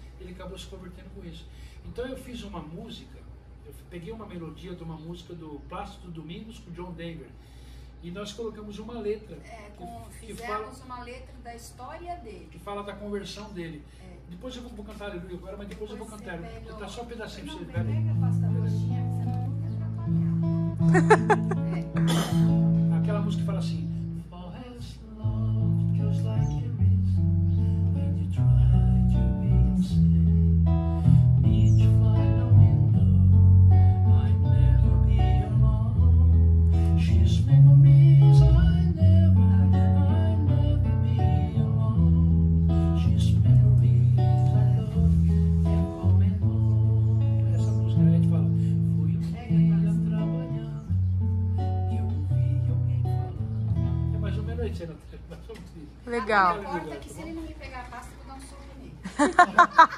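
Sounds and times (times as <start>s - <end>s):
acoustic and electric guitars playing: 17.6s - 54.8s.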